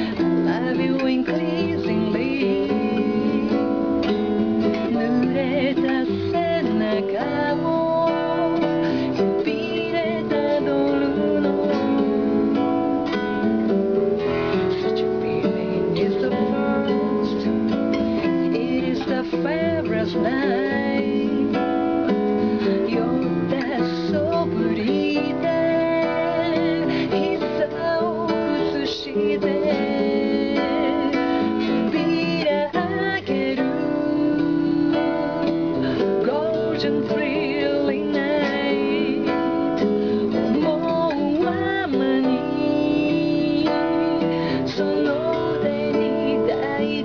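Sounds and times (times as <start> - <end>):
classical guitar strummed chords: 0.0 - 47.0
woman singing: 0.0 - 47.0.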